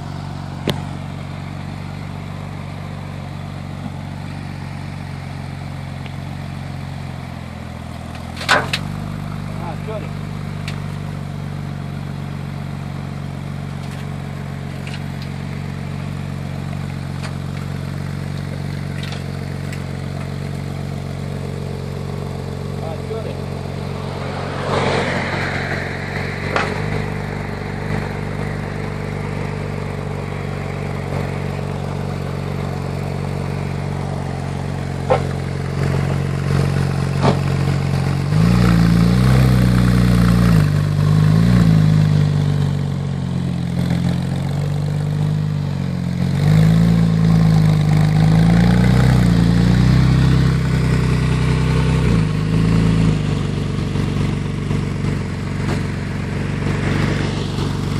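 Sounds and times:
car engine idling and revving: 0.0 - 57.9.

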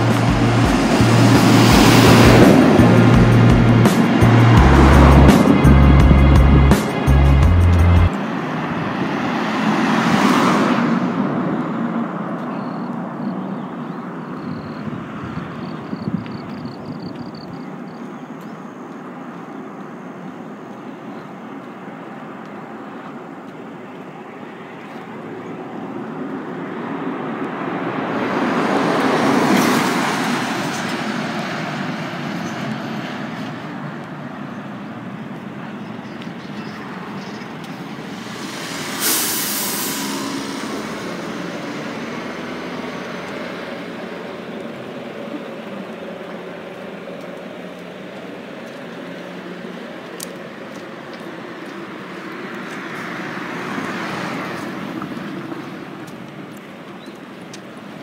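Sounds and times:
distant traffic hum: 0.0 - 58.0
vehicles passing: 0.0 - 58.0.

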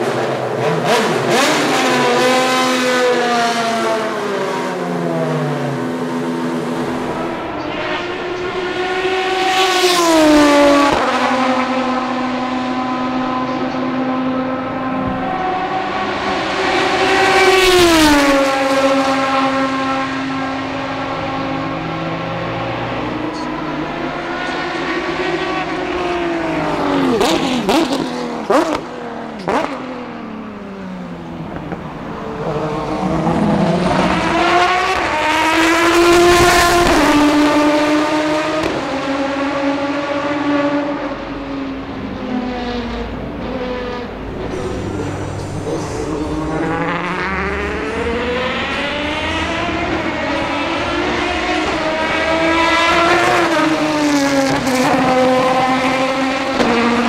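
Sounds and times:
race car accelerating hard: 0.0 - 57.0
race car engines passing by: 0.0 - 57.0.

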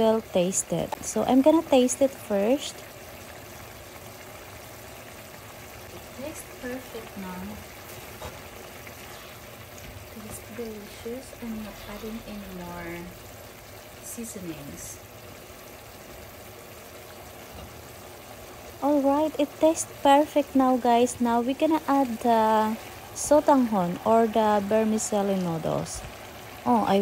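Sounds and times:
broth simmering in a skillet: 0.0 - 27.0.

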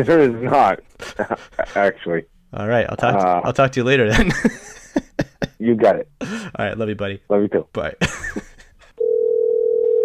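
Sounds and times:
person laughing: 1.0 - 1.8, 4.1 - 5.6, 8.0 - 9.0
telephone line tone: 9.0 - 10.0.

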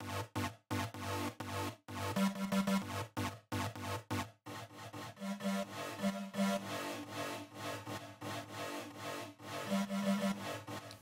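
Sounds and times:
synth lead loop with reverb: 0.0 - 11.0.

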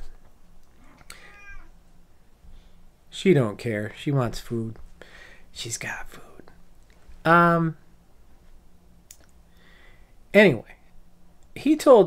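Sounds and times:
cat meowing: 0.8 - 1.8.

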